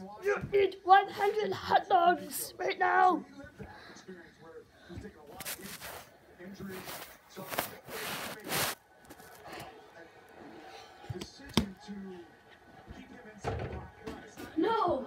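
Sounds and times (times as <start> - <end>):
rustling and brushing: 5.3 - 9.4.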